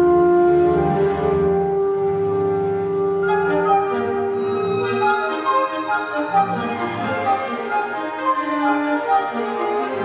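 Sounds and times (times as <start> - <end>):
chamber ensemble strings and winds: 0.0 - 10.0.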